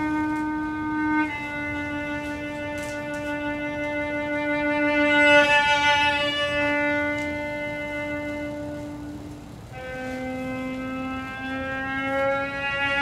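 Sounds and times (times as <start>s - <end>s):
cello bowing drone notes: 0.0s - 13.0s.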